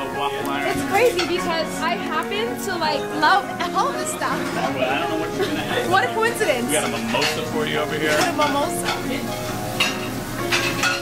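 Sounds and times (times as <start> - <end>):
food sizzling: 0.0 - 11.0.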